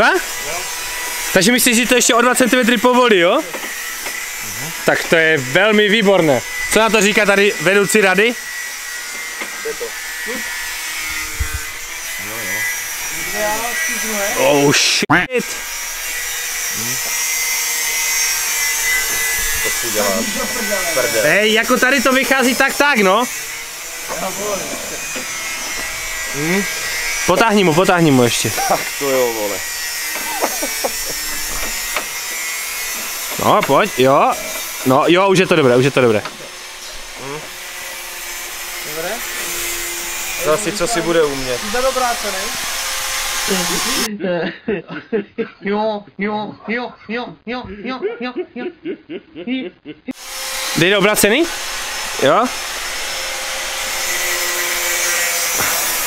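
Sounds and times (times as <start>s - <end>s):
metal rasping on metal: 0.0s - 14.6s, 15.4s - 44.1s, 50.2s - 56.0s.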